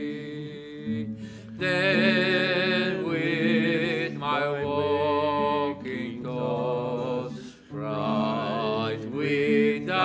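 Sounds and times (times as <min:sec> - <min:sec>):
acoustic guitar: 0:00.0 - 0:10.0
man singing: 0:00.0 - 0:10.0.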